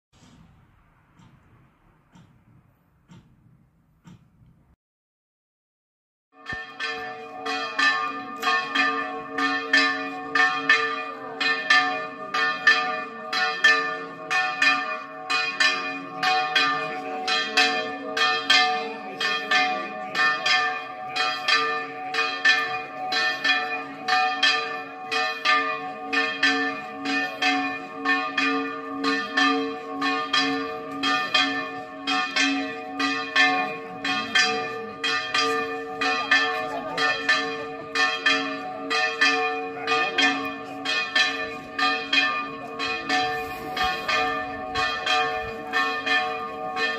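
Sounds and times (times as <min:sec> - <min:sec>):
church bells ringing a peal: 0:06.4 - 0:46.9.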